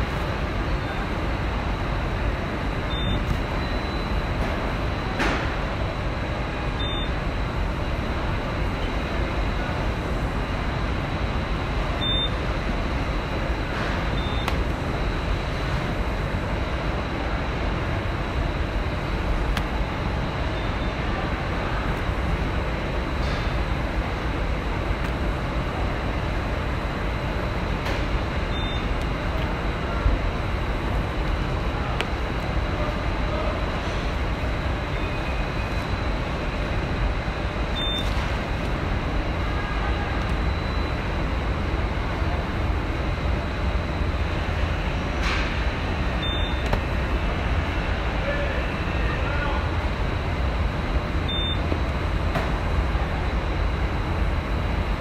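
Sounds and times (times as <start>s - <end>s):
machinery rumble: 0.0s - 55.0s.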